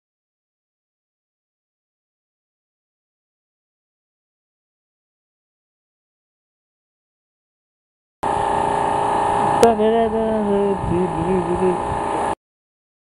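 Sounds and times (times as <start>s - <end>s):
steady machine hum: 8.2s - 12.4s.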